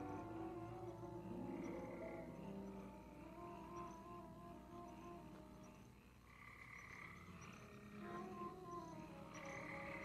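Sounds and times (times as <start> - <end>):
frogs croaking: 0.0 - 10.0
soft orchestral film music: 0.0 - 10.0.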